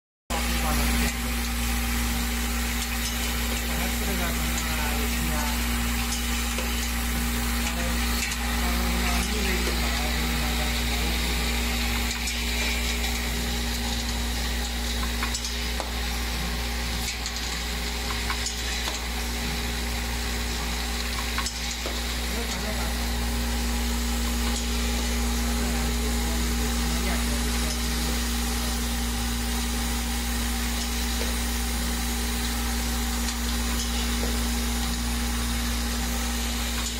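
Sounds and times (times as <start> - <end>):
packing machine humming: 0.3 - 36.9.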